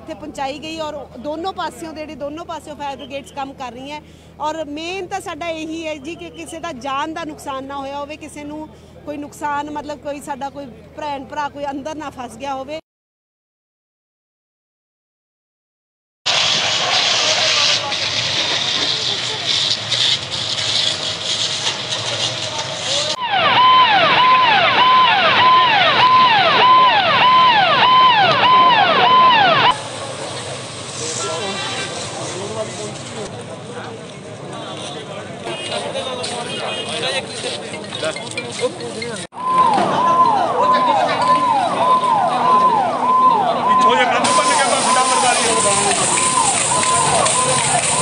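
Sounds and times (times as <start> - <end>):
loud steady hiss: 16.3 - 23.2, 29.7 - 33.2, 44.2 - 48.0
fire engine siren: 16.3 - 29.9, 39.3 - 48.0.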